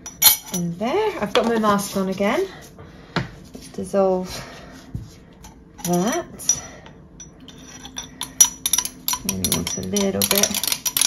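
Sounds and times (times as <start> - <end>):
metal spoon clinking in jug: 5.8 - 6.6, 7.2 - 11.0.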